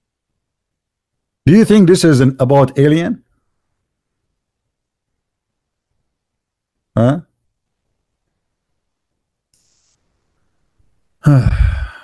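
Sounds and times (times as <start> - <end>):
man sighing: 11.2 - 12.0.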